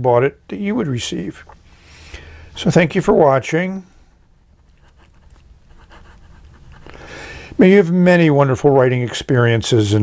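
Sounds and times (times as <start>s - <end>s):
breathing: 1.6s - 2.6s, 3.8s - 4.3s, 6.8s - 7.6s
pen nib scratching paper: 4.5s - 7.0s.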